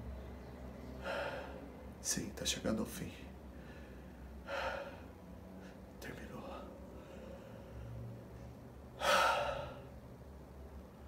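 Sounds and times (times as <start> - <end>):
man gasping breath: 3.5 - 5.8, 9.0 - 9.9.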